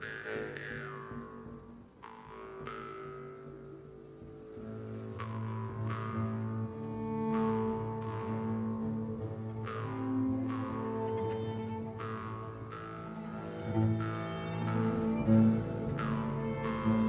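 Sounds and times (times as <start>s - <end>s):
low bowed strings: 0.0s - 17.0s
plucked string attacks: 7.3s - 17.0s.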